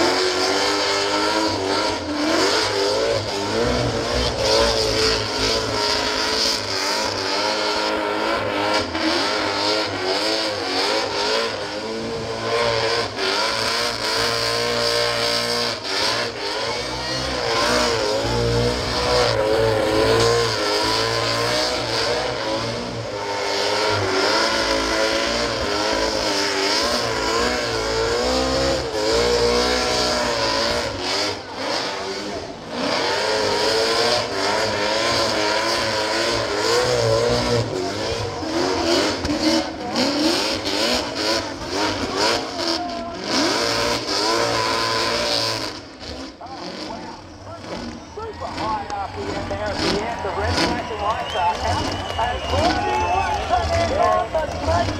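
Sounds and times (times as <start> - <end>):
car engine at high revs: 0.0 - 54.9.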